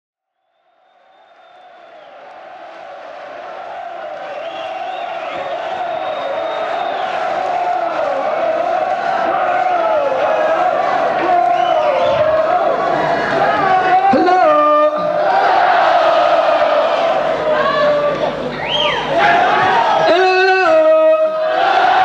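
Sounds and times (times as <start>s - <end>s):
concert crowd chanting and cheering: 1.5s - 22.0s.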